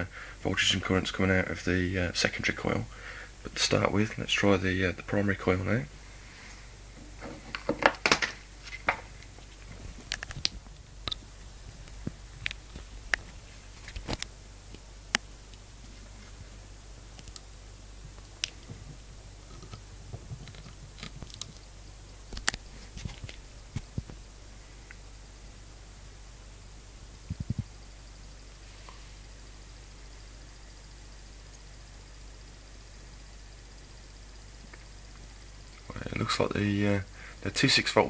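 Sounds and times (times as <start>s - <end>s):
faint high whine: 0.0s - 38.0s
low hum: 8.4s - 37.3s.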